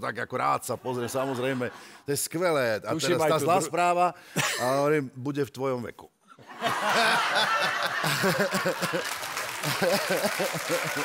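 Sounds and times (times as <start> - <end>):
audience laughing: 6.4 - 11.0.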